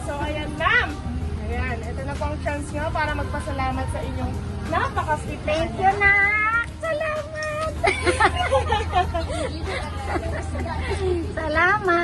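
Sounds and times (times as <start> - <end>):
babble of chatter: 0.0 - 12.0.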